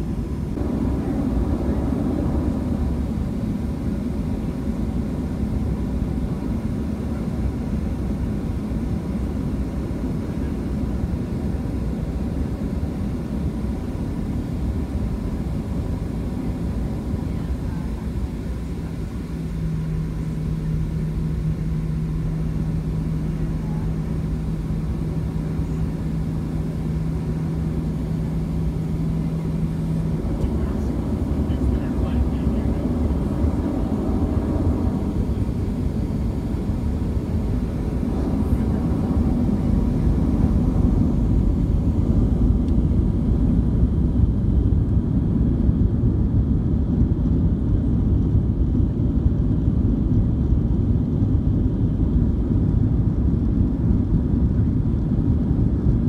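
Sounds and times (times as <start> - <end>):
jet engine rumble in cabin: 0.0 - 56.0
steady low hum: 0.0 - 56.0.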